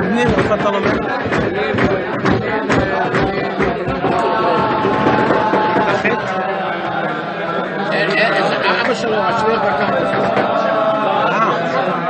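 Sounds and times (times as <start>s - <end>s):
overlapping chatter in a hall: 0.0s - 12.0s.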